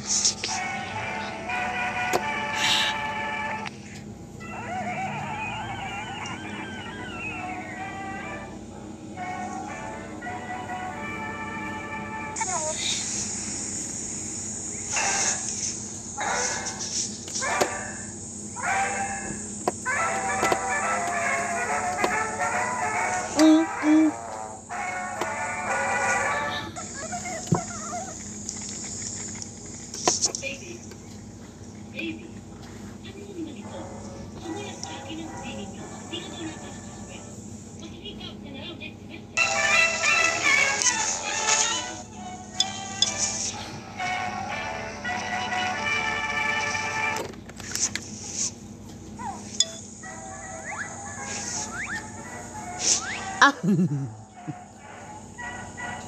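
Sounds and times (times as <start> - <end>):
cartoon music: 4.4 - 8.6, 19.9 - 24.2, 49.6 - 53.7
voices: 23.4 - 24.2, 33.0 - 39.4
low steady hum: 48.2 - 51.2.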